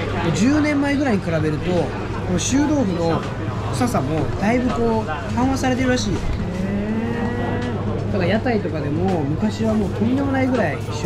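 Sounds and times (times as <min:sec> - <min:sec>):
person humming: 0:06.4 - 0:07.8.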